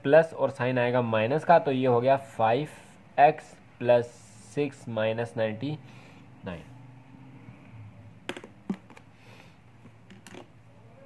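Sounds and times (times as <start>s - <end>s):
pens clicking and tapping on paper: 8.3s - 9.1s, 10.1s - 10.5s.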